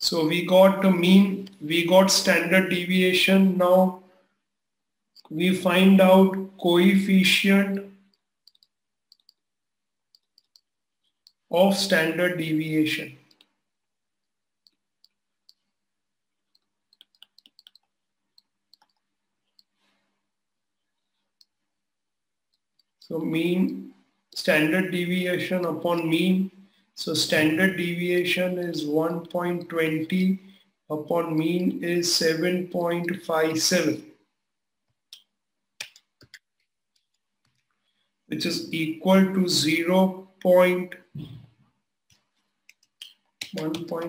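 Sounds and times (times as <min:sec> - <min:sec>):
stylus clicks on writing surface: 0:07.7 - 0:09.5, 0:10.1 - 0:11.5, 0:16.5 - 0:19.8.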